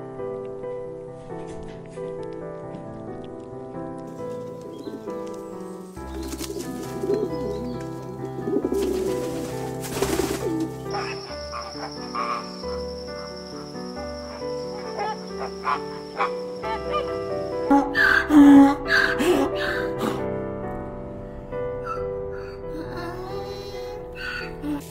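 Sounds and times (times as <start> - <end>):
soft background music: 0.0 - 24.9
cooing bird calls: 4.3 - 13.3, 13.9 - 19.8.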